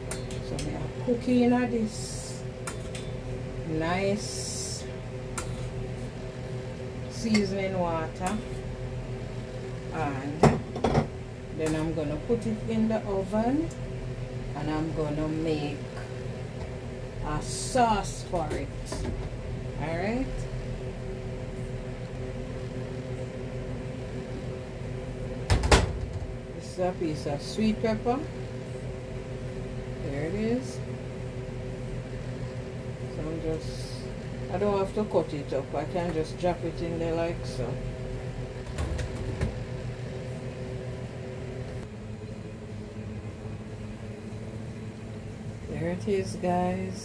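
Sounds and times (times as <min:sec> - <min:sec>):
range hood fan humming: 0:00.0 - 0:47.0.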